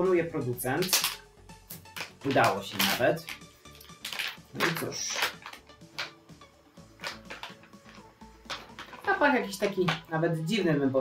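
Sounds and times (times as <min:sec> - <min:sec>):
faint background music: 0:00.0 - 0:11.0
plastic snack packet crinkling: 0:00.8 - 0:06.2, 0:06.9 - 0:10.1.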